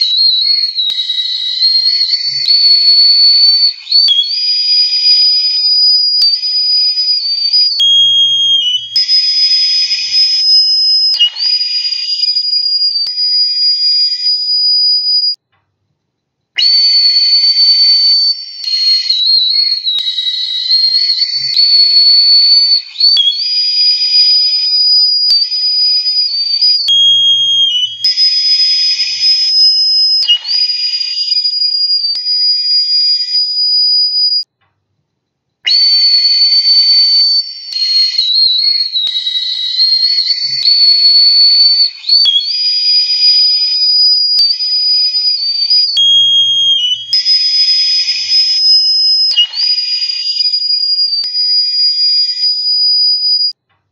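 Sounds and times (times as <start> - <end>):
recorder playing shrill notes: 0.0 - 15.4, 16.6 - 34.5, 35.7 - 53.6.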